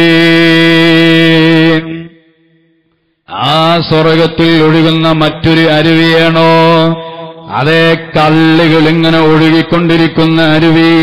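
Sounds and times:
man chanting a long note: 0:00.0 - 0:02.2.

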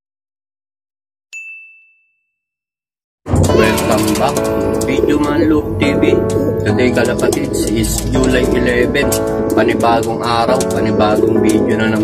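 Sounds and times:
notification bell ding: 0:01.4 - 0:02.4.

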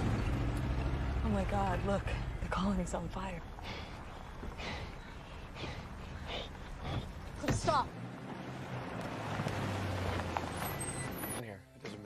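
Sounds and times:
vehicle engine humming: 0:00.0 - 0:11.4.

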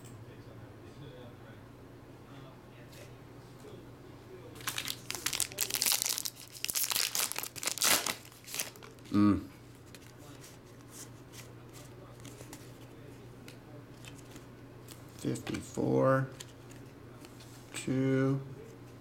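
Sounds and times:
foil wrapper tearing and crinkling: 0:04.6 - 0:09.0.

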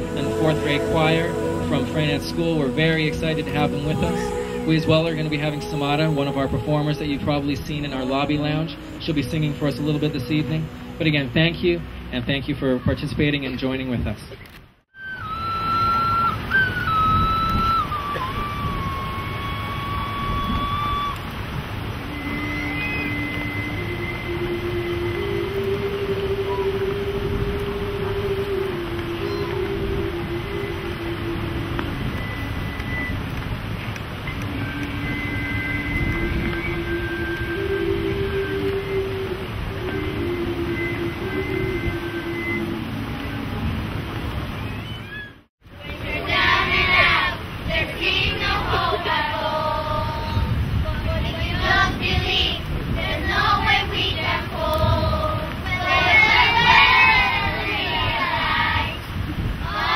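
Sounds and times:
small wind instruments melody: 0:00.0 - 0:12.8, 0:14.9 - 0:59.9
steady rushing noise: 0:00.0 - 0:13.4, 0:15.3 - 0:44.6, 0:45.6 - 0:59.9.

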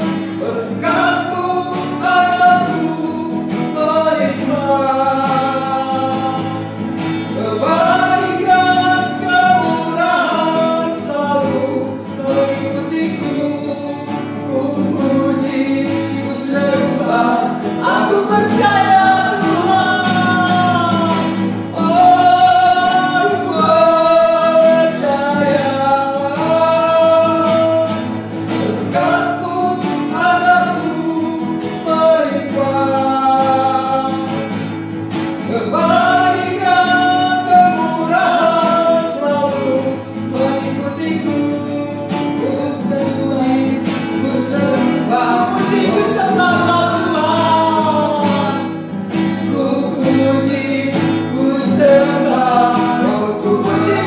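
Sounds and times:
woman and man singing: 0:00.0 - 0:34.8, 0:35.4 - 0:54.0
strummed acoustic guitar: 0:00.0 - 0:54.0.

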